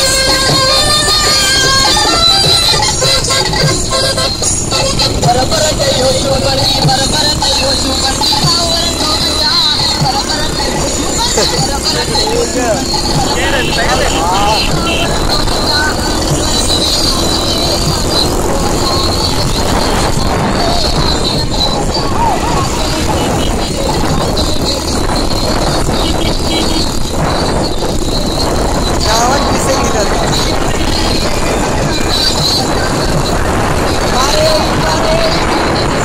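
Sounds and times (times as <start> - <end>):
motorcycle engines rumbling: 0.0 - 36.0
road traffic: 0.0 - 36.0
voice: 4.8 - 26.9, 28.9 - 36.0.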